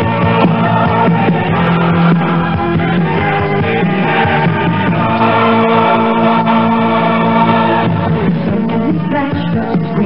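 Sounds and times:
choir singing: 0.0 - 10.0
instrumental backing music: 0.0 - 10.0.

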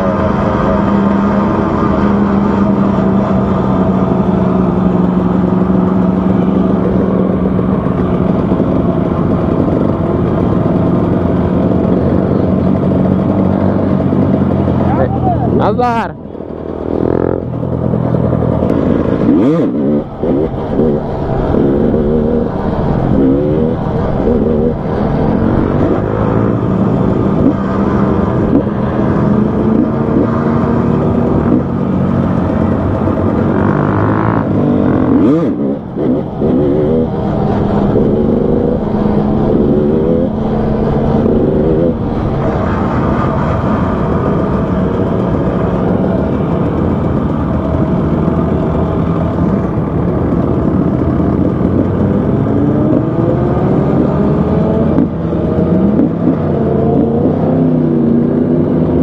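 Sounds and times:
motorcycle engine droning: 0.0 - 59.0
other motorcycles running: 0.0 - 59.0.

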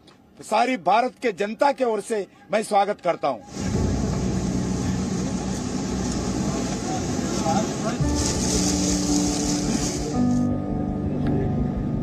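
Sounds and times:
passengers murmuring: 3.4 - 10.4
low steady tone: 10.2 - 12.0.

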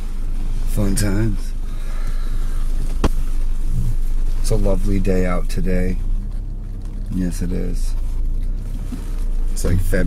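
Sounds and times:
car cabin rumble: 0.0 - 10.0.

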